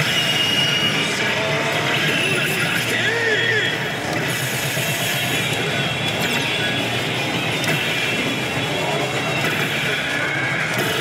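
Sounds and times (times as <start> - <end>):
pachislot hall din: 0.0 - 11.0
slot machine music and effects: 0.0 - 11.0.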